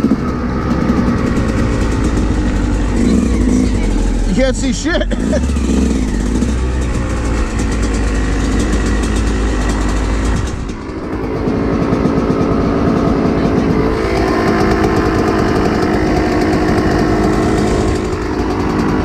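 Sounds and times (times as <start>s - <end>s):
dirt bike engine idling: 0.0s - 19.0s.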